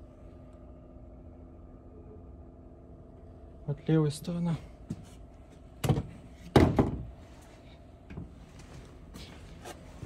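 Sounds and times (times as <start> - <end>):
dull knocks against wooden shelving: 5.8 - 7.1.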